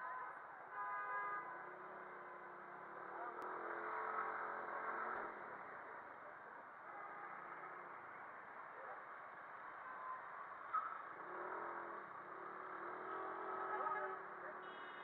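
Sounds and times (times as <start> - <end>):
city traffic noise: 0.0 - 15.0.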